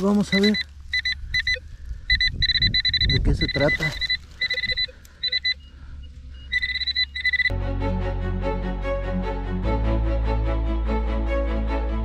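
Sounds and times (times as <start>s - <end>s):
metal detector pinpointer beeping: 0.2s - 7.5s
music: 7.5s - 12.0s.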